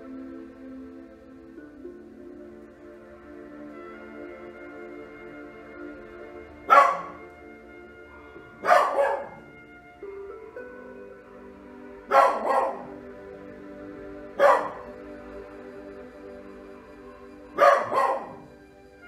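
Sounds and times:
soft ambient music: 0.0s - 19.0s
dog barking: 6.7s - 7.2s, 8.6s - 9.5s, 12.1s - 13.0s, 14.4s - 14.9s, 17.6s - 18.5s.

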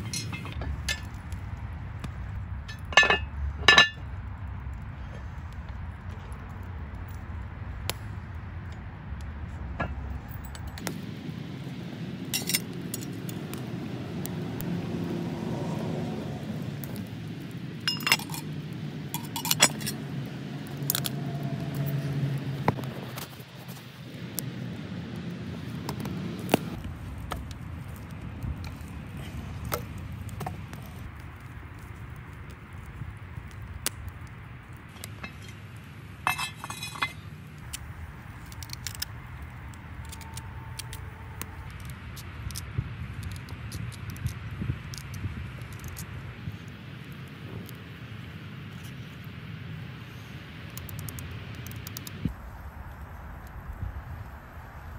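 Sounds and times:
metallic clinks: 0.0s - 1.1s, 2.7s - 4.0s, 17.9s - 18.5s, 36.2s - 37.2s
campfire crackling: 0.0s - 54.9s
metallic clink with ringing: 2.7s - 4.0s, 17.9s - 18.4s.

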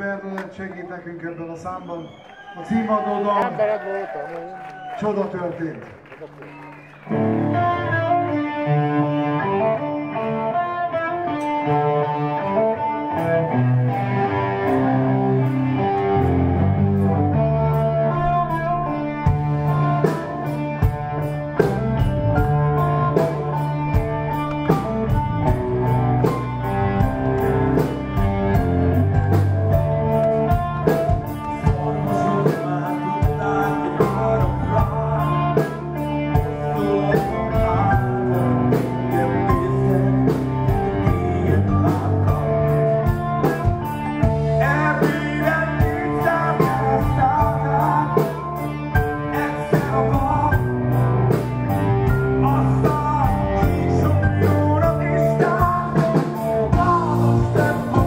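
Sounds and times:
electric guitar: 6.4s - 58.0s
bass guitar: 7.0s - 58.0s
drum kit beat: 17.8s - 58.0s.

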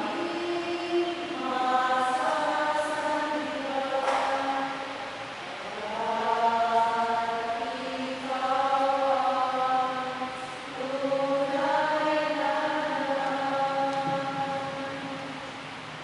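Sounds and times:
choir singing a hymn: 0.0s - 15.3s.

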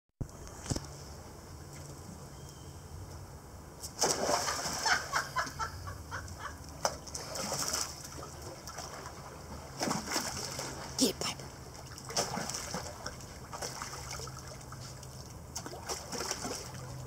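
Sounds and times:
water splashing and sloshing: 3.8s - 17.0s
dog jumping into water splash: 3.9s - 5.1s, 6.8s - 9.2s, 12.0s - 14.6s, 15.6s - 17.0s.

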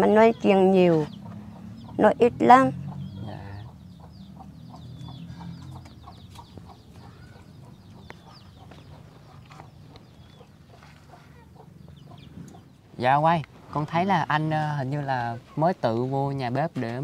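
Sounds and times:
chickens clucking: 0.0s - 17.0s
high chirps and peeps: 0.2s - 13.1s.

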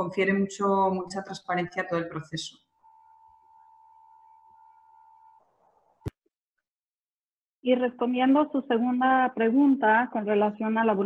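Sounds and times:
faint electronic tone: 2.8s - 5.5s.

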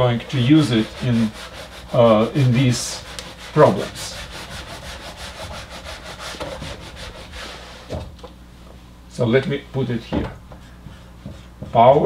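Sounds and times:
eraser rubbing on whiteboard: 0.0s - 8.0s, 10.5s - 12.0s.

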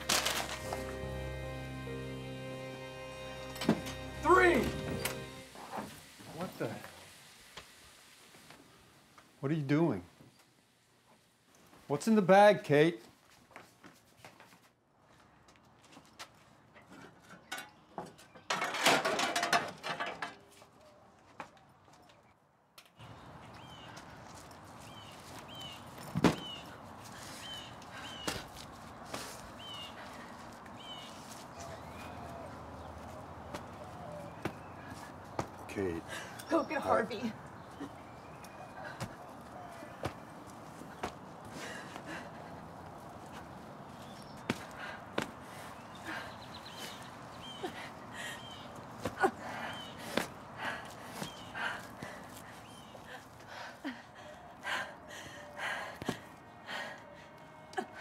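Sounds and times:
outdoor background hiss: 0.0s - 14.1s
clattering and knocking in a shed: 15.8s - 20.8s, 25.9s - 26.8s.

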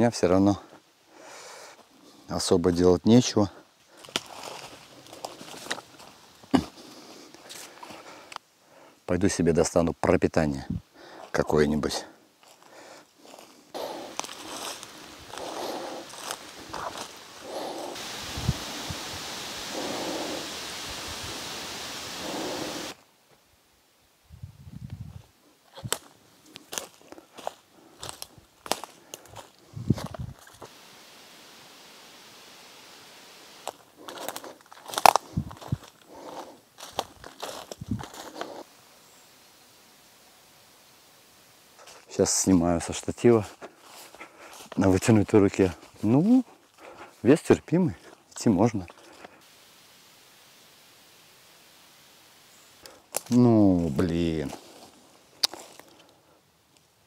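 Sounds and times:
footsteps crunching twigs and leaves: 3.8s - 8.5s, 12.4s - 20.7s, 25.6s - 39.4s, 41.6s - 49.6s, 52.3s - 56.2s.

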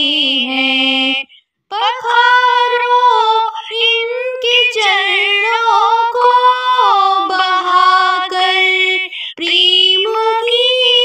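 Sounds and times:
woman singing devotional song: 0.0s - 11.0s.

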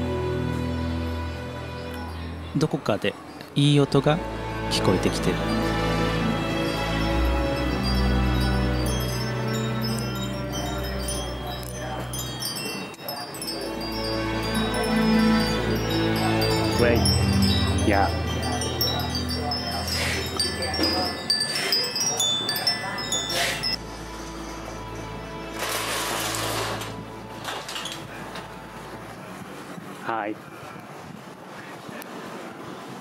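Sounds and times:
music: 0.0s - 30.0s
metal wind chimes ringing: 4.7s - 25.5s.

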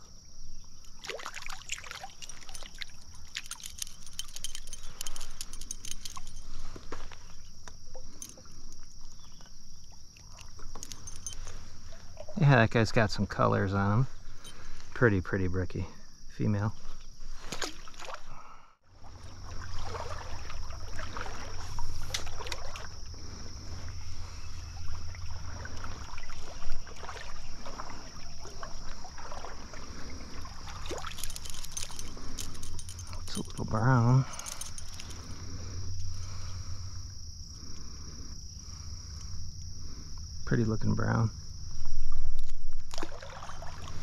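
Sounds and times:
high insect drone: 0.0s - 44.0s
close-up splashing: 0.8s - 7.1s, 17.3s - 40.1s, 41.9s - 44.0s
handling clicks and rustling: 0.9s - 8.8s, 10.5s - 11.6s, 30.8s - 36.2s.

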